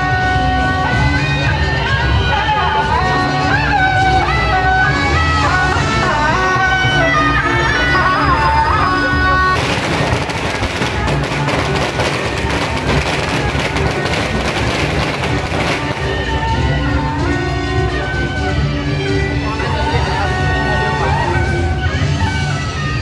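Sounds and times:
drums: 0.0 - 23.0
firecrackers crackling: 9.2 - 17.1.

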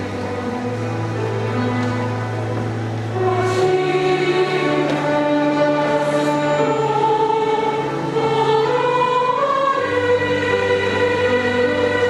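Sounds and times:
chamber orchestra accompaniment: 0.0 - 12.0
choir singing a hymn: 0.0 - 12.0.

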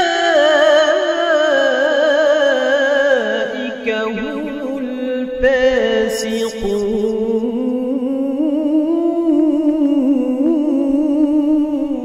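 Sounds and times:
man reciting melodically: 0.0 - 12.0.

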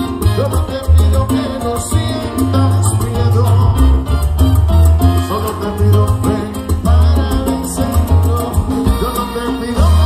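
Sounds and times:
live salsa band playing: 0.0 - 10.0.

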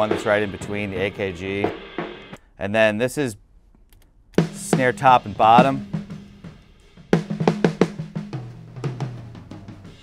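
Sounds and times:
low drum tone ringing: 0.0 - 2.4, 4.4 - 10.0
snare drum strokes: 0.0 - 2.4, 4.4 - 6.6.

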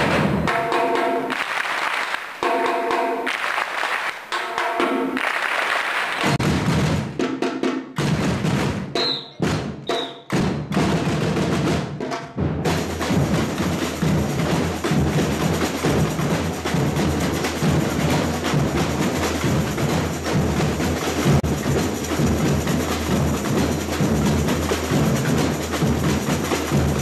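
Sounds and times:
samba percussion band: 0.0 - 27.0
heavy low drum beat: 6.2 - 27.0.

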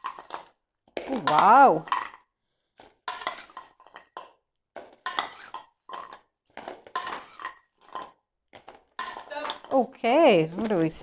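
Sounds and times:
wrapped sweets clattering in bowls: 0.0 - 11.0.

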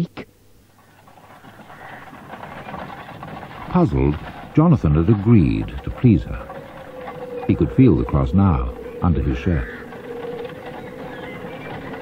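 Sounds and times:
constant hum: 0.0 - 12.0
horse-drawn carriage rolling: 0.7 - 12.0.

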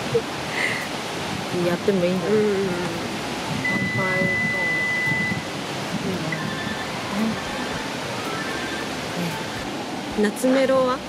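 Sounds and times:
people talking: 0.0 - 0.9, 1.5 - 5.4, 6.0 - 7.9, 9.1 - 9.6, 10.2 - 11.0
outdoor background hiss: 0.0 - 11.0
steady high-pitched tone: 1.6 - 10.8.

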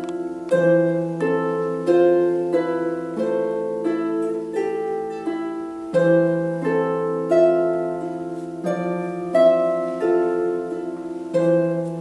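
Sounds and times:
plucked harp notes: 0.0 - 12.0.

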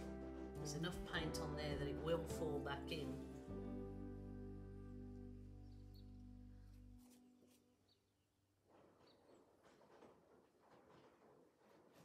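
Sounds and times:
background music: 0.0 - 7.6.

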